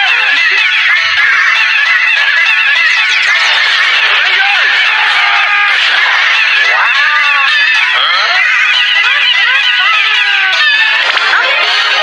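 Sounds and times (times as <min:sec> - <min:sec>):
squeaky cartoon voices chattering: 0:00.0 - 0:12.0.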